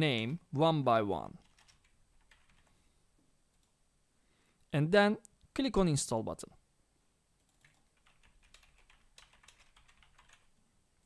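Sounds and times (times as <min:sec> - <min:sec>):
faint keyboard typing: 0:01.3 - 0:02.8, 0:03.5 - 0:03.8, 0:07.4 - 0:10.6.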